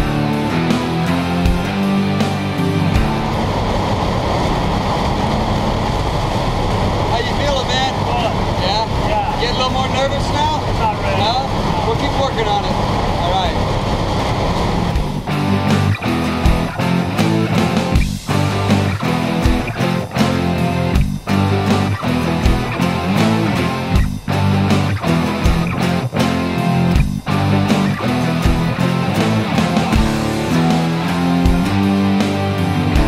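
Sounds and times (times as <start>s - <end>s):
plane engine and propeller noise: 0.0s - 33.0s
rock guitar music: 0.0s - 33.0s.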